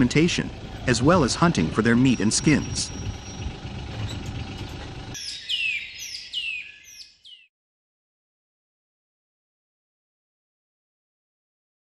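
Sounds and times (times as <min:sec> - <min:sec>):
low rumble: 0:00.0 - 0:05.2
bird chirping: 0:00.0 - 0:07.5.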